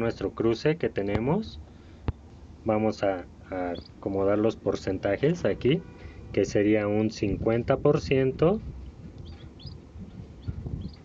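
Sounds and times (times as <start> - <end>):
low background noise: 0.0 - 11.0
faint bird chirps: 3.6 - 4.0, 9.2 - 11.0.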